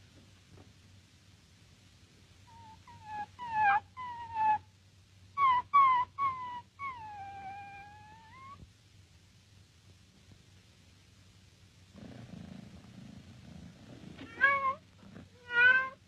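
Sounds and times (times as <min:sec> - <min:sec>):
high-pitched animal cries: 0:02.5 - 0:04.6, 0:05.4 - 0:08.6, 0:14.3 - 0:14.8, 0:15.4 - 0:16.0.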